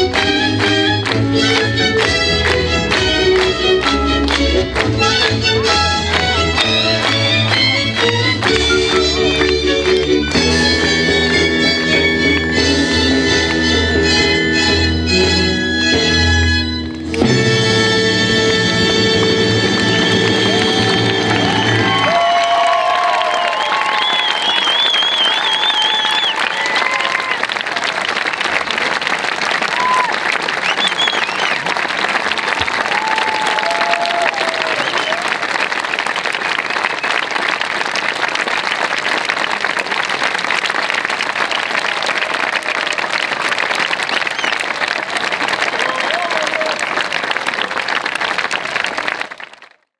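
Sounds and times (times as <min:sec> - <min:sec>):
audience applauding: 0:00.0 - 0:15.2, 0:18.1 - 0:49.9
symphony orchestra chord: 0:01.9 - 0:21.8
whistles and shouts: 0:23.5 - 0:27.1, 0:30.6 - 0:31.6, 0:34.6 - 0:35.2, 0:44.3 - 0:44.6.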